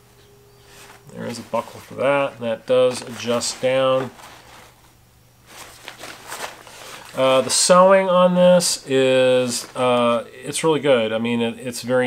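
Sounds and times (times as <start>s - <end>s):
fabric strap rustling: 0.6s - 7.9s, 8.9s - 10.2s.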